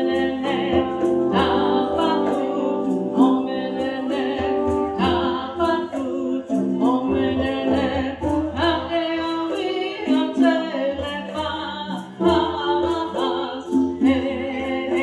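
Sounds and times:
hand drum and percussion beat: 0.0 - 15.0.

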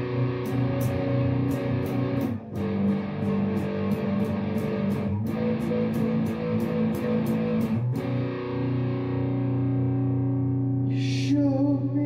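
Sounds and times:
distorted electric guitar chord: 0.0 - 11.2.

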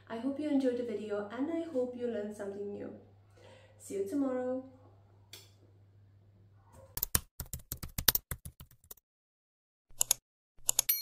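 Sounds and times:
keyboard typing: 7.0 - 9.0, 9.9 - 11.0.

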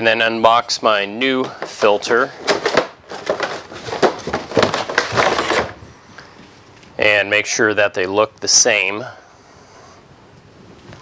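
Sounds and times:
cardboard crinkling and scraping: 1.4 - 5.8.

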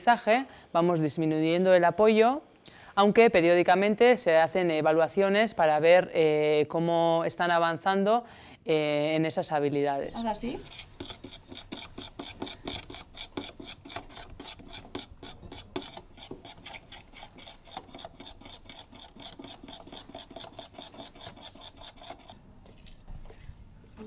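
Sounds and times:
utensil scraping glass bowl: 10.2 - 22.4.

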